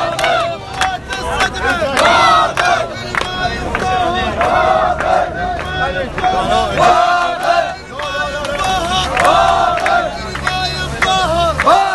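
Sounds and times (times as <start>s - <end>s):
crowd chanting slogans: 0.0s - 11.9s.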